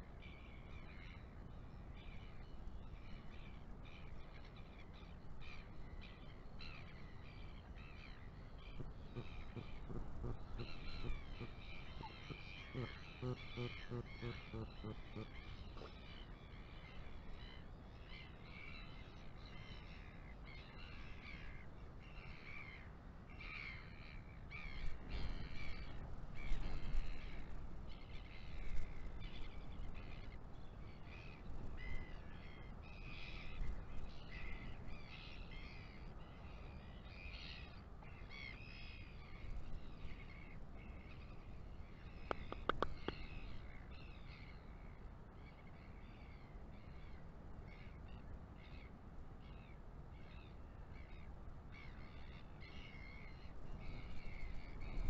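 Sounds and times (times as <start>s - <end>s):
birds harsh calls: 7.8s - 16.5s, 41.9s - 44.6s.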